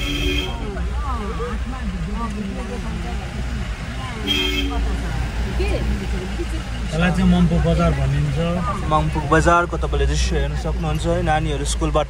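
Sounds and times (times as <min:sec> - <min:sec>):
car engine: 0:00.0 - 0:12.0
road rumble: 0:00.0 - 0:12.0.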